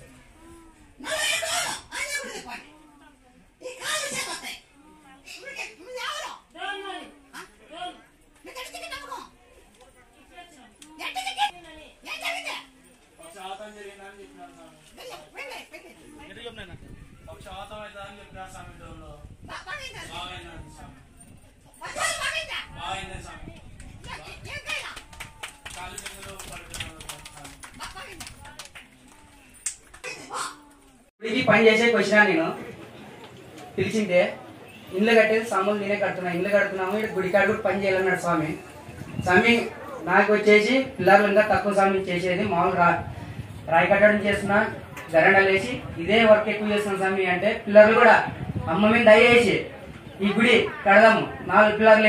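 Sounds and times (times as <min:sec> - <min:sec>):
faint human voices: 0:00.0 - 0:03.8, 0:04.5 - 0:31.1, 0:36.7 - 0:40.1.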